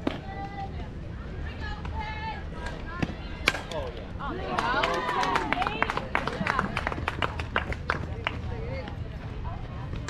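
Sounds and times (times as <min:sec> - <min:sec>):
spectators shouting and cheering: 0:04.2 - 0:05.9.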